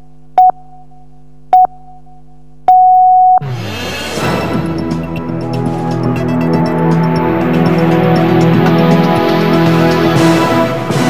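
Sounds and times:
long electronic beep: 0:00.4 - 0:03.4
steady low drone: 0:03.7 - 0:11.0
theme music with pitch sweep: 0:03.7 - 0:11.0.

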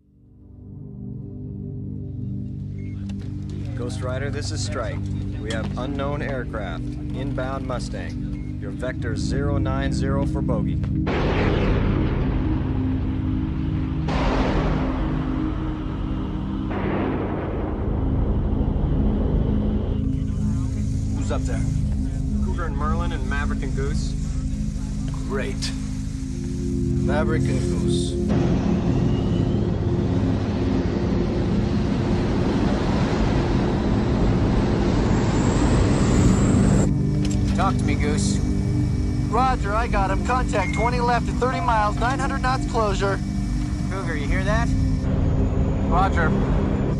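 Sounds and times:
low synth drone: 0:00.0 - 0:46.9
jet engine rushing: 0:11.0 - 0:46.9.

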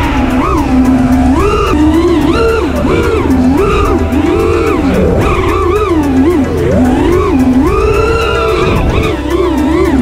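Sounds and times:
background music with beat: 0:00.0 - 0:10.0
drone motors whining: 0:00.0 - 0:10.0.

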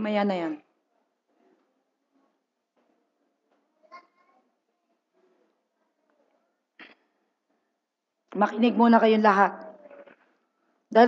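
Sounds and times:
faint room murmur: 0:00.0 - 0:11.0.

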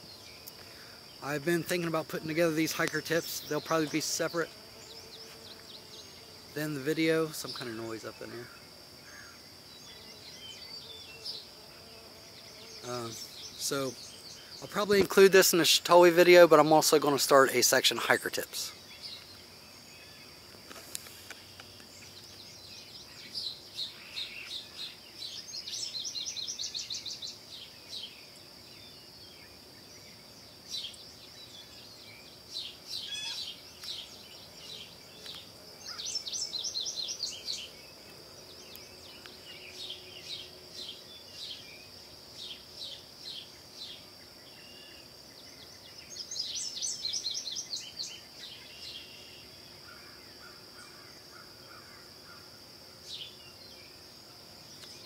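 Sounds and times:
songbird trilling: 0:00.0 - 0:11.5, 0:21.3 - 0:28.2, 0:30.7 - 0:52.4
high-pitched insect drone: 0:00.0 - 0:55.0
bird chirps: 0:12.5 - 0:16.0, 0:17.8 - 0:52.4.

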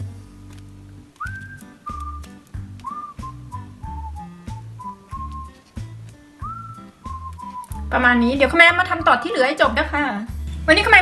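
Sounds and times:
whistled melody: 0:01.2 - 0:08.2.

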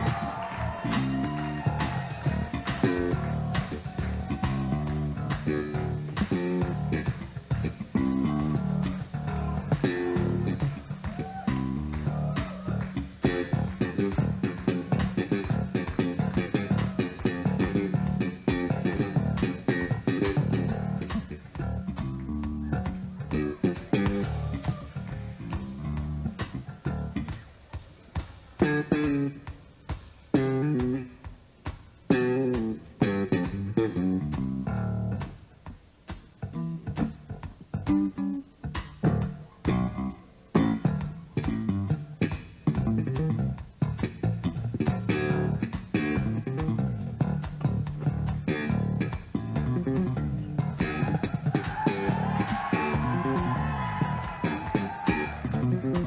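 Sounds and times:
electric bass guitar plucked notes: 0:00.0 - 0:27.4, 0:28.6 - 0:29.4, 0:30.4 - 0:31.1, 0:32.1 - 0:35.4, 0:36.4 - 0:56.0.

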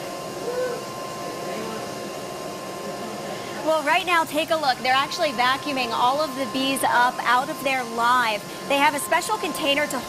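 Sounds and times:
thin steady whine: 0:00.0 - 0:10.0.

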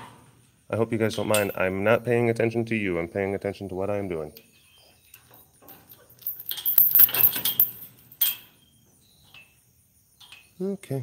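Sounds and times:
keys jangling against metal: 0:05.7 - 0:08.4.

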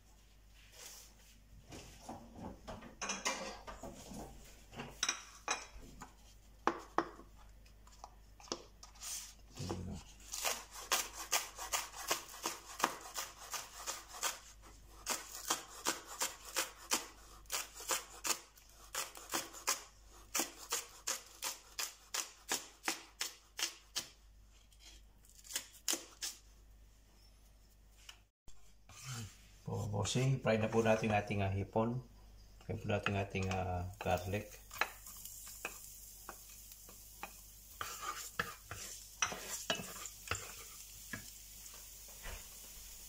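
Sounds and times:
knife chopping on wooden board: 0:10.3 - 0:24.2.

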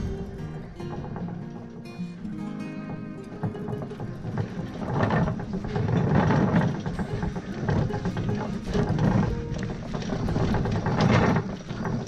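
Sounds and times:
guitar music: 0:00.0 - 0:10.7
frame rattling: 0:00.0 - 0:12.0.

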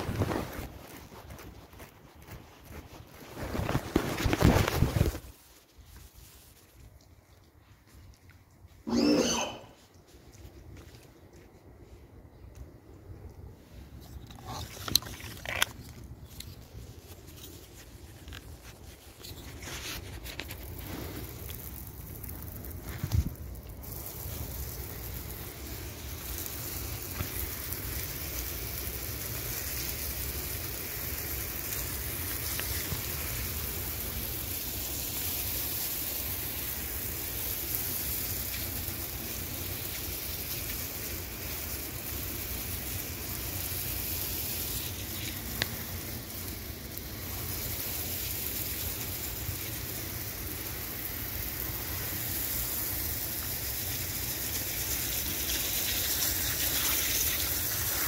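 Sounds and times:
hose water spraying on tiles: 0:00.0 - 0:10.8, 0:13.9 - 0:58.0.

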